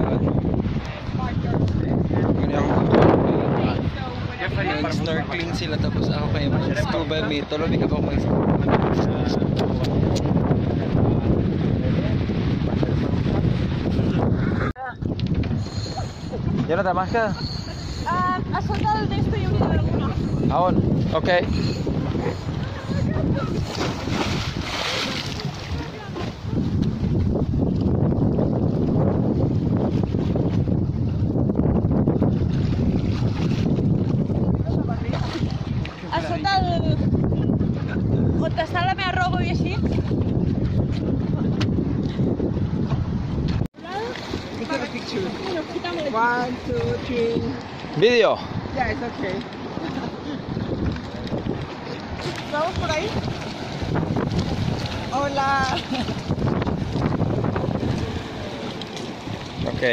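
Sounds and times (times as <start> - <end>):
sea water lapping: 0.0 - 59.9
wind buffeting microphone: 0.0 - 59.9
short splashes: 21.5 - 26.5, 50.6 - 59.9.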